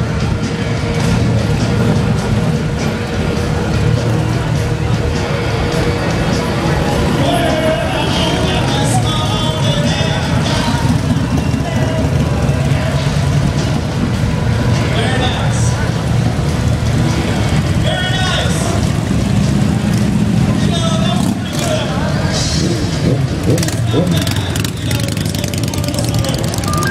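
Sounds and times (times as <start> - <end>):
crowd voices: 0.0 - 26.9
motorcycle engines: 0.0 - 26.9
music: 0.0 - 26.9.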